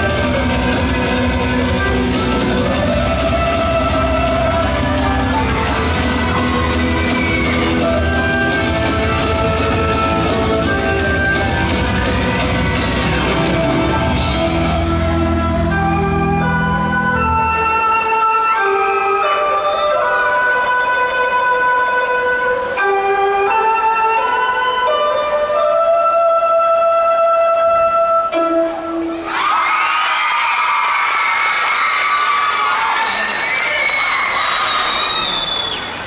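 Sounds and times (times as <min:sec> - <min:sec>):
audience cheering and shouting: 0:00.0 - 0:14.6, 0:29.2 - 0:36.0
slow music over loudspeakers: 0:00.0 - 0:29.6.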